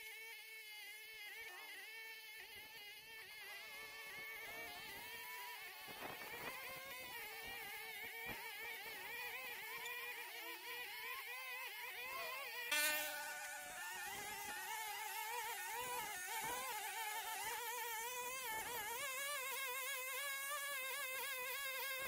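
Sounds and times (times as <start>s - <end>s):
brush cutters running: 1.1s - 22.0s.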